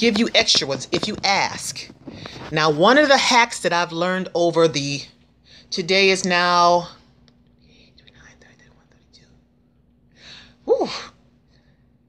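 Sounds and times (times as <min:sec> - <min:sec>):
faint steady hum: 0:00.0 - 0:12.0
woman whispering: 0:07.7 - 0:09.4.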